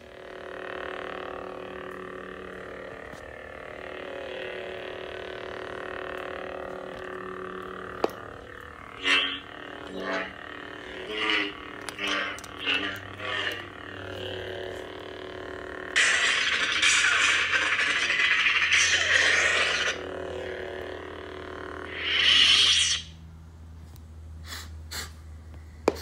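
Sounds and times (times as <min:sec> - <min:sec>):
toy lightsaber buzzing hum: 0:00.0 - 0:26.0
lightsaber swing sounds: 0:01.3 - 0:14.9, 0:15.9 - 0:20.6, 0:21.8 - 0:23.2
loud hissing effect: 0:21.9 - 0:23.1.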